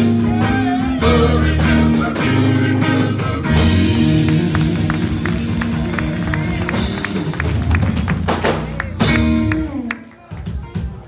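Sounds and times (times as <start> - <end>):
electric guitar: 0.0 - 10.0
ticking beat: 3.8 - 10.6.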